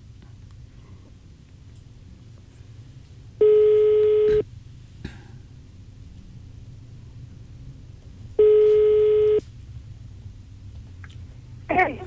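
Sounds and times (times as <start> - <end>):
telephone ringback tone: 3.4 - 4.4, 8.4 - 9.4.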